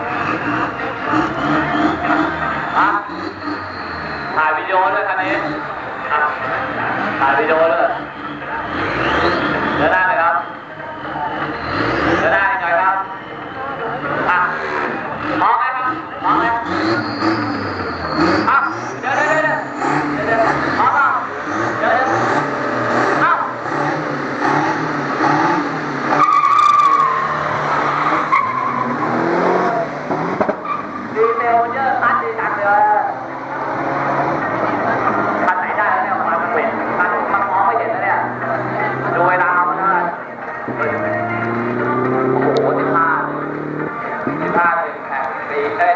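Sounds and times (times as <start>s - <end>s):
people talking: 0.0s - 3.6s, 4.3s - 23.8s, 31.1s - 45.9s
truck engines revving: 0.0s - 45.9s
tyres squealing: 14.4s - 35.5s.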